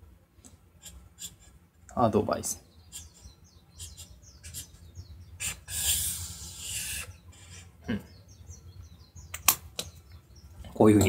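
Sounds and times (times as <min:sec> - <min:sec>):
pen scratching on paper: 0:00.8 - 0:01.6, 0:02.9 - 0:04.8, 0:05.4 - 0:07.8.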